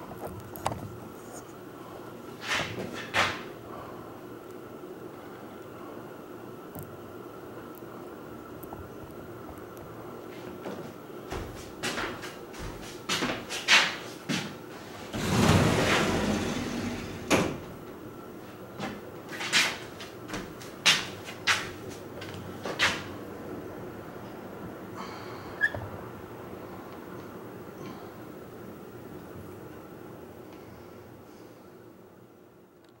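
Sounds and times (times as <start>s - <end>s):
scraping rustle: 15.0s - 17.3s.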